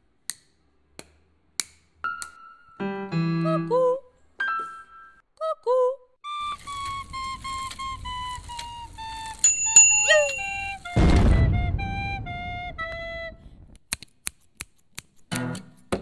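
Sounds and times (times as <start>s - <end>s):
soprano recorder playing: 6.2s - 13.5s
high steady ringing tone: 9.4s - 10.9s
burst of noise: 10.8s - 13.7s.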